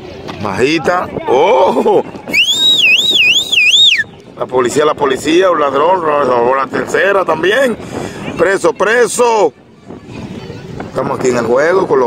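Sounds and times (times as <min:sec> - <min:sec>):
siren-like whistle: 0:02.4 - 0:04.1.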